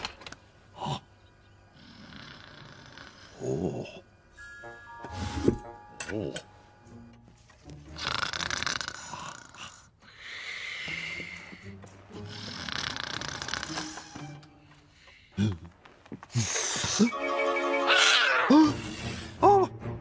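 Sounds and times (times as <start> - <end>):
cartoon rasping snores: 1.8 - 4.0, 8.0 - 9.9, 12.3 - 13.9.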